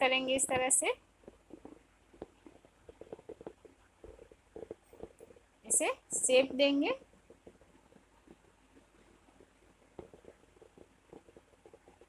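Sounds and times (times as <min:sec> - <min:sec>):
crochet hook soft ticks and rubbing: 0:00.4 - 0:12.0.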